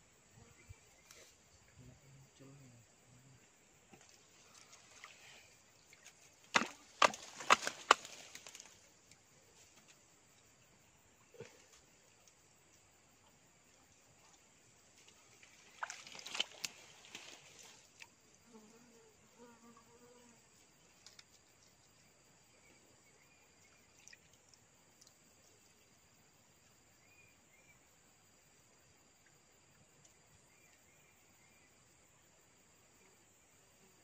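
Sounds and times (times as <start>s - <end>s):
dry twigs cracking and snapping: 6.5s - 8.7s.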